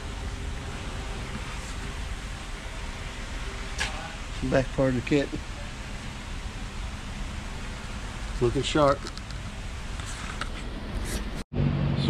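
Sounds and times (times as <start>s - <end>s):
background hiss and rumble: 0.0s - 12.0s.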